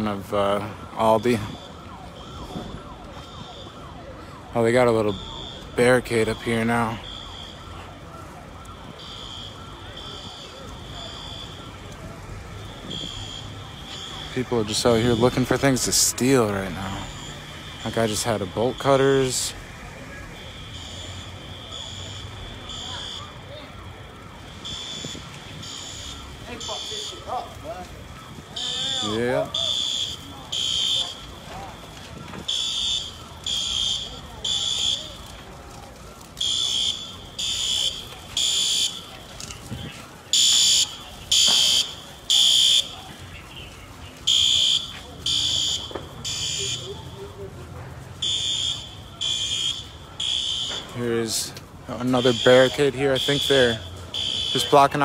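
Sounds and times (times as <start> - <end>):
fire alarm beeping: 0.0 - 55.0.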